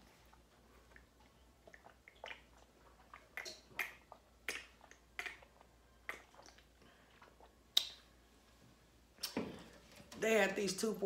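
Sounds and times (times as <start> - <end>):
person chewing food: 0.0 - 8.1
wet smacks: 1.6 - 6.7, 7.4 - 8.1.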